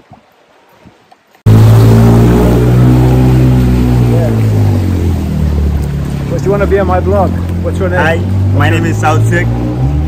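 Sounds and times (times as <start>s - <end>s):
motorbike engine hum: 1.5s - 10.0s.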